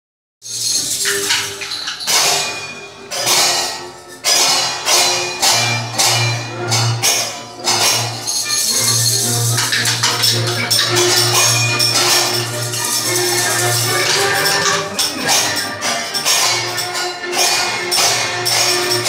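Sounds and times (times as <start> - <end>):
music: 0.4 - 19.0
tambourines and shakers: 0.4 - 19.0.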